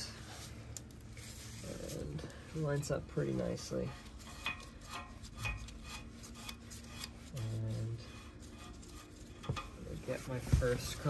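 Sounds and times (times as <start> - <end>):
metal threads scraping: 0.0 - 10.4.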